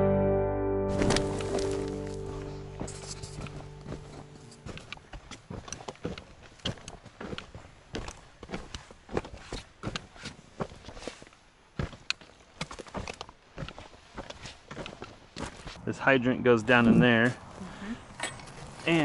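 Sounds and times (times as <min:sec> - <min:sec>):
footsteps on dry dirt: 0:00.9 - 0:15.8.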